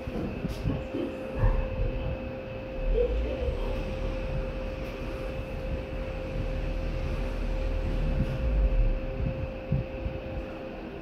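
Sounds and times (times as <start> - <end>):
elevator hum: 0.0 - 11.0.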